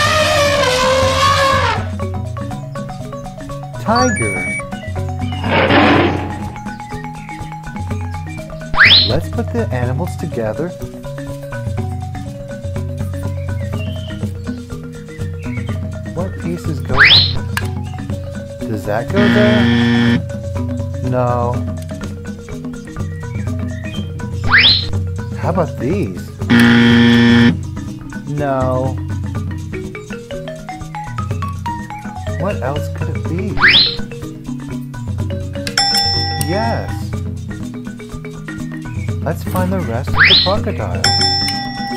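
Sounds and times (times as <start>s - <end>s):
light background music: 0.2s - 41.9s
tiger roaring: 5.4s - 6.7s
rising whistle-like glide: 8.8s - 9.1s, 16.9s - 17.5s, 24.4s - 24.9s, 33.6s - 34.1s.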